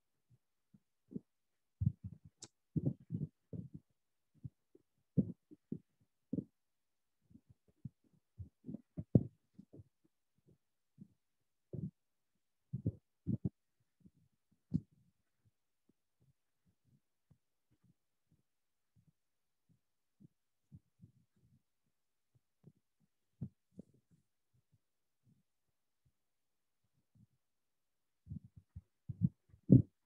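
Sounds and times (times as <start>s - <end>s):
soft muffled low thumps: 28.3s - 30.0s.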